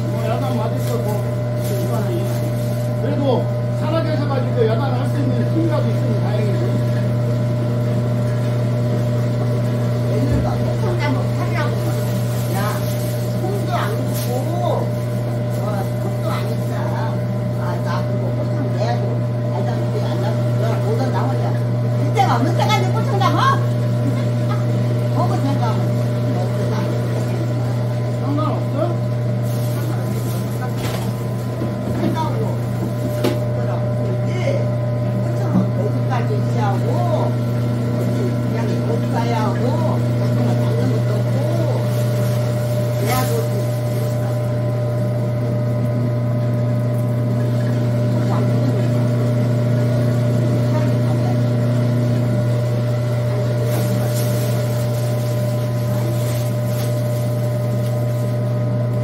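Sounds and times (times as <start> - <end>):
food grinder motor humming: 0.0 - 59.0.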